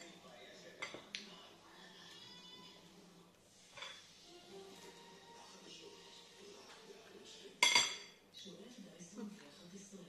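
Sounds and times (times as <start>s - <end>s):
cutlery clinking on ceramic: 0.8s - 1.2s, 3.7s - 4.1s, 7.6s - 8.2s.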